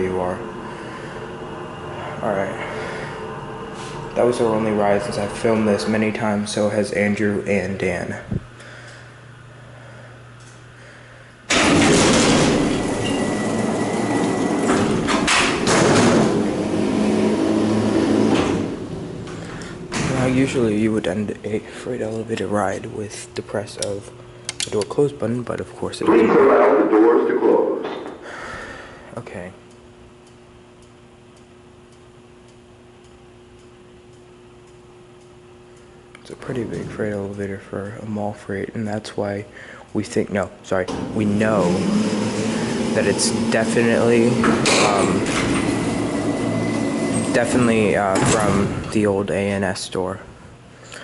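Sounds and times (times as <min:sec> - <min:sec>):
elevator doors rumbling clatter: 0:00.0 - 0:06.8, 0:11.5 - 0:21.3, 0:40.8 - 0:49.2
quiet steady hum: 0:00.0 - 0:51.0
faint regular tick: 0:29.7 - 0:36.3.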